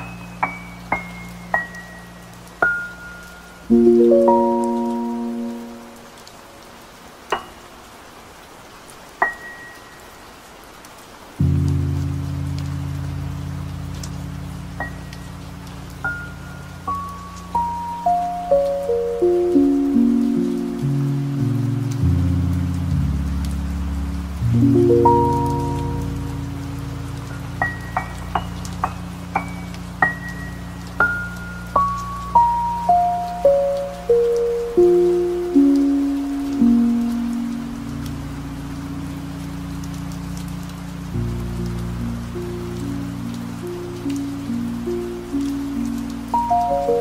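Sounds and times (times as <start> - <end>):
piano chords: 0.0 - 6.2, 11.3 - 47.0
rain: 0.0 - 47.0.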